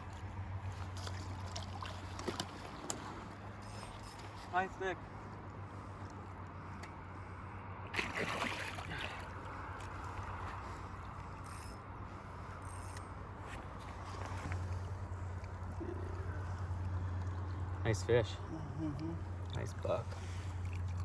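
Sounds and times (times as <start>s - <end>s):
water sloshing and splashing: 0.0s - 6.5s, 7.8s - 12.5s, 13.4s - 18.2s, 19.2s - 21.0s.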